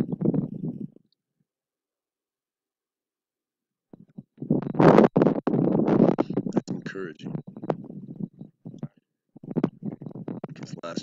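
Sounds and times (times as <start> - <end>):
wind buffeting microphone: 0.0 - 1.0, 4.0 - 11.0
faint man's voice: 6.5 - 7.4, 10.5 - 11.0.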